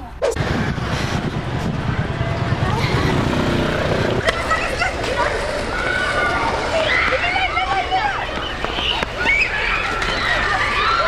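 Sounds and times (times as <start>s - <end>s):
faint voices: 0.0s - 11.0s
heavy low rumble: 0.4s - 6.9s.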